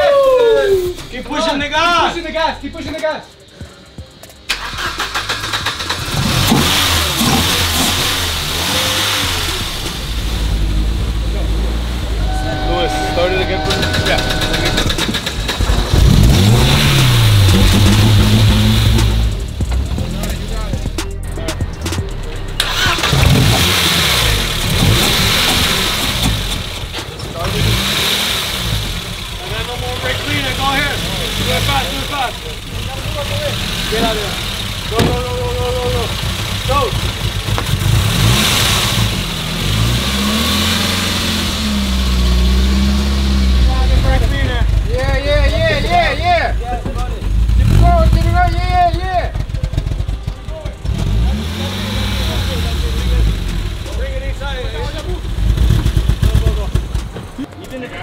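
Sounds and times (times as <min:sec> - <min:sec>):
car engine revving: 0:04.5 - 0:57.5.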